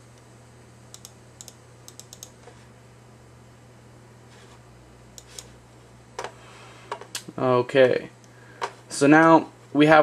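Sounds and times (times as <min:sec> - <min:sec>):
steady low hum: 0:00.0 - 0:10.0
computer keys clicking: 0:00.9 - 0:02.4.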